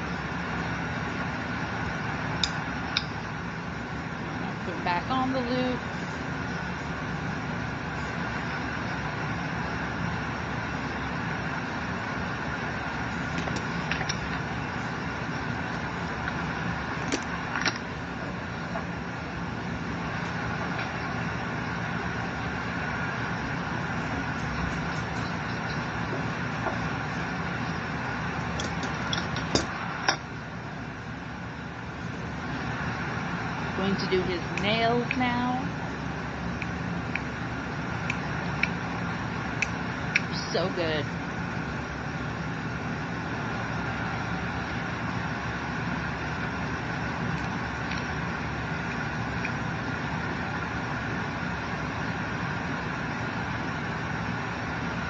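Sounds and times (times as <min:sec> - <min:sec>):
mechanical hum and hiss: 0:00.0 - 0:55.0.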